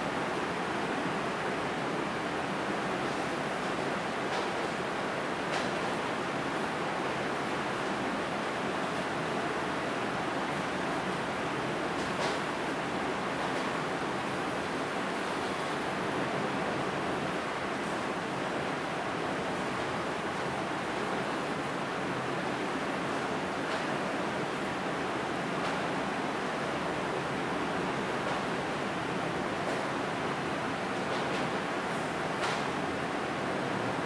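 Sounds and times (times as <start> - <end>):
room noise hiss: 0.0 - 34.0.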